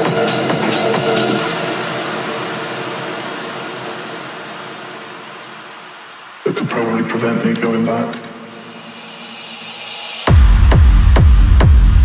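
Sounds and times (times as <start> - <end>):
techno beat: 0.0 - 3.2, 10.3 - 12.0.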